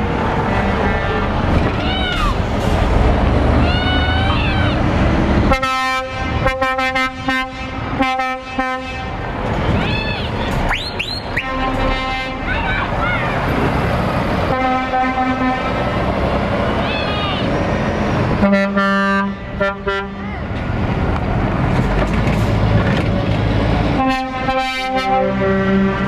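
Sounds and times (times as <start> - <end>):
diesel truck engines running: 0.0 - 26.0
lorry air horns tooting: 5.5 - 9.2, 11.2 - 12.9, 14.5 - 15.9, 18.4 - 20.3, 24.0 - 26.0.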